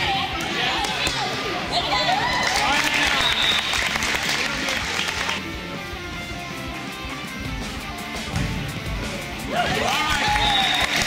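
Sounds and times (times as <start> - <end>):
hand clapping in a gym: 2.3 - 5.4, 9.8 - 11.0.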